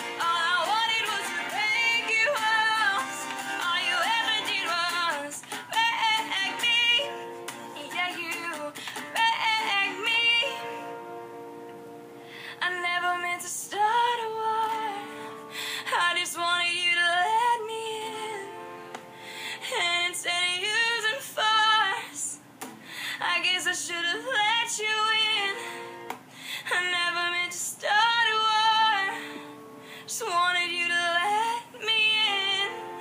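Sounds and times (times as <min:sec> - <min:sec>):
woman singing a pop ballad: 0:00.0 - 0:11.1, 0:12.4 - 0:22.4, 0:23.0 - 0:33.0
singer breathing: 0:05.4 - 0:05.7, 0:08.8 - 0:09.1, 0:12.1 - 0:12.6, 0:15.0 - 0:15.9, 0:19.0 - 0:19.7, 0:22.7 - 0:23.2, 0:25.6 - 0:26.7, 0:29.2 - 0:30.1.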